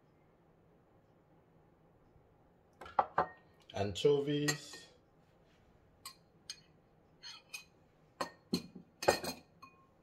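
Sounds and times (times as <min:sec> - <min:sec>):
glass bowls clinking: 0:06.1 - 0:10.0.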